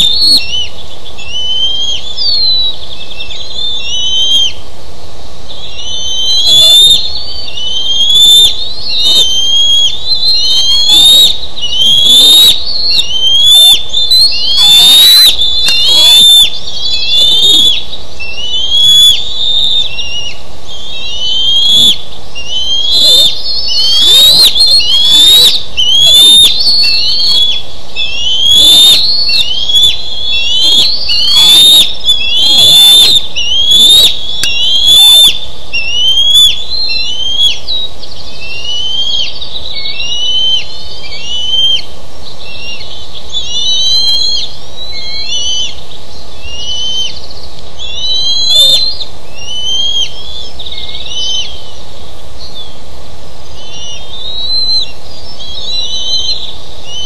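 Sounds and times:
eaglets high piercing calls: 0.0s - 4.6s, 5.5s - 45.8s, 46.4s - 51.8s, 53.6s - 57.0s.

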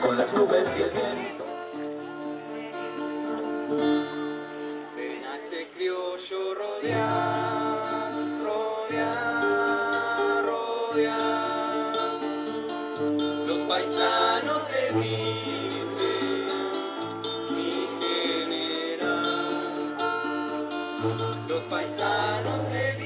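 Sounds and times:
acoustic guitars strumming: 0.0s - 23.0s
young voices singing: 4.7s - 23.0s.

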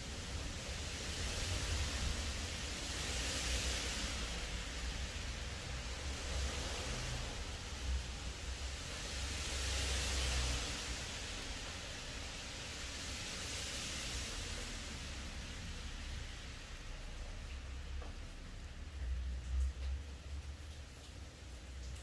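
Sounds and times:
heavy rain falling: 0.0s - 22.0s.

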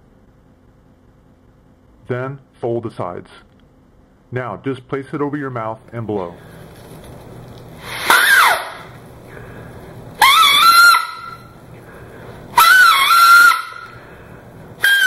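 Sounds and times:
paper whistle squawks: 7.8s - 8.9s, 10.2s - 11.6s, 12.5s - 14.0s, 14.8s - 15.0s.

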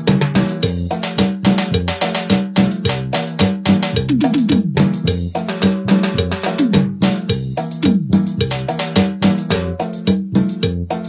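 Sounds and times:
upbeat latin-style keyboard music: 0.0s - 11.0s.

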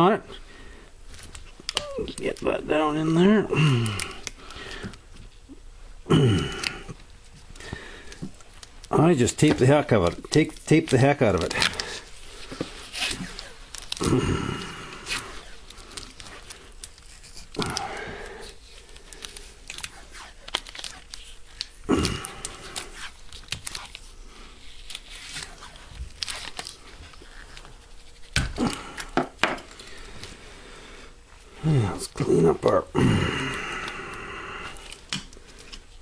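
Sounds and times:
tape peeling off roll: 6.5s - 30.4s
rustling and handling clicks: 7.4s - 14.0s.

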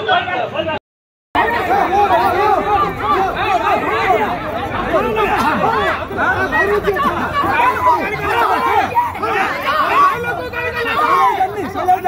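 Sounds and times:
people talking over one another: 0.0s - 0.8s, 1.4s - 12.0s.

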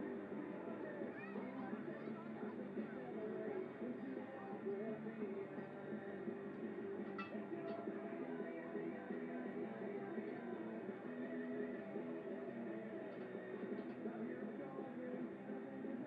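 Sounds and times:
indistinct background voices: 0.0s - 16.0s
music playing: 0.0s - 16.0s.

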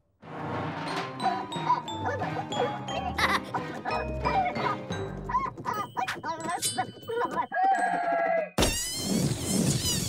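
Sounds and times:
cartoon music: 1.0s - 10.0s.

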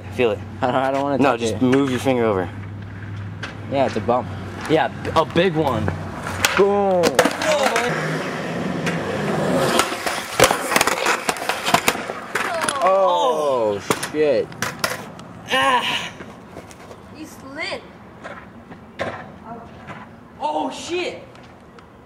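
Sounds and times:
skateboard wheels rolling on concrete: 0.0s - 22.0s
skateboard clacking on ground: 4.6s - 15.2s, 18.2s - 20.1s
person shouting: 12.4s - 13.8s, 15.5s - 16.2s.

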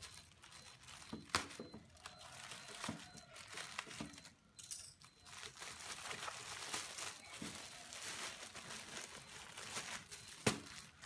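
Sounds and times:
plastic mailer bag crinkling: 0.0s - 4.4s, 5.0s - 11.0s.

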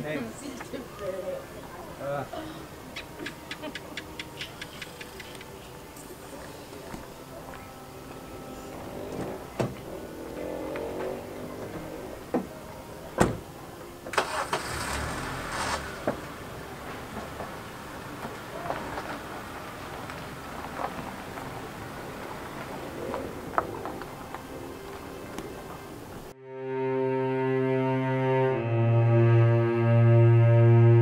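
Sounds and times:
car engine cranking and starting: 14.0s - 22.6s.

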